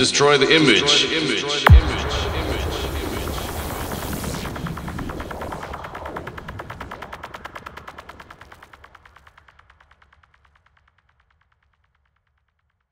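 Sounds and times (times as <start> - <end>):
low bass hum: 1.7 - 8.6
stuttering synth pulses: 1.7 - 9.0.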